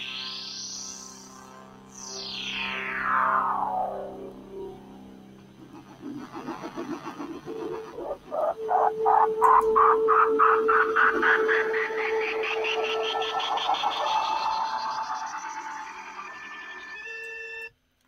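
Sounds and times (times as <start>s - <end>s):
steady held tone: 0.0s - 17.8s
cartoon pulsing warble: 2.4s - 17.2s.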